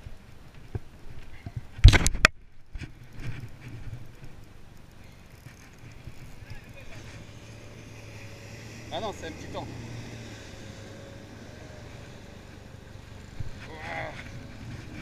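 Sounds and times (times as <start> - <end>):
outboard motor humming: 3.0 - 15.0.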